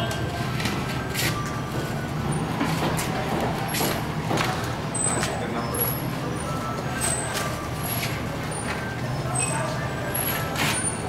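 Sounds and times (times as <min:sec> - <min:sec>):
motor traffic engine rumble: 0:00.0 - 0:11.0
people talking: 0:02.9 - 0:07.6, 0:08.3 - 0:11.0.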